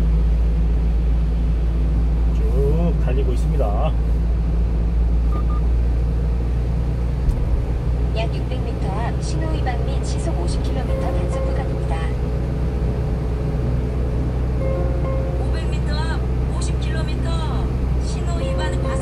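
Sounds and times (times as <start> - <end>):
truck engine rumble: 0.0 - 19.0.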